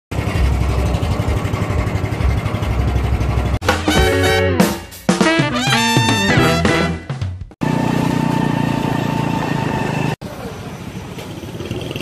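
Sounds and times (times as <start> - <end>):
wind: 0.1 - 3.6, 7.6 - 12.0
boat motor running: 0.1 - 4.4, 7.6 - 10.2
music: 3.6 - 7.6.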